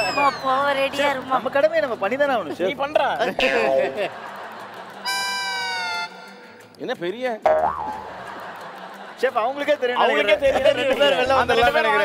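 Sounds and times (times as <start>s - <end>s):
background music: 0.0s - 12.0s
comedy sliding tone effect: 3.4s - 4.2s, 5.1s - 6.4s.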